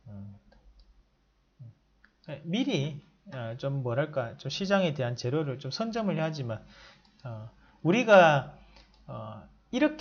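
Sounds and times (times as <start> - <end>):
man murmuring: 0.0 - 0.4
computer mouse clicks: 7.0 - 7.3, 8.7 - 9.1.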